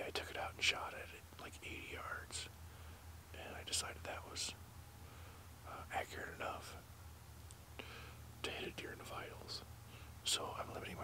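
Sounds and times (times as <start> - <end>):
man whispering: 0.0 - 2.6, 3.3 - 4.6, 5.6 - 6.9, 8.4 - 11.0
steady low hum: 0.0 - 11.0.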